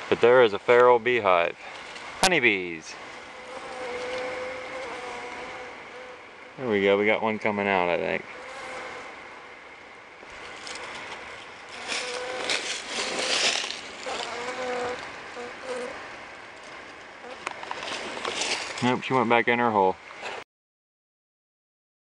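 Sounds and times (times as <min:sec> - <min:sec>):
honeybees buzzing: 0:00.2 - 0:18.9
rustling and scraping: 0:02.9 - 0:05.8, 0:10.2 - 0:16.0, 0:16.6 - 0:19.2.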